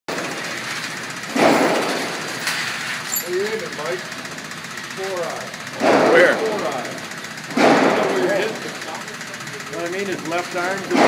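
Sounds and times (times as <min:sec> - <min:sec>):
steady background noise: 0:00.1 - 0:11.0.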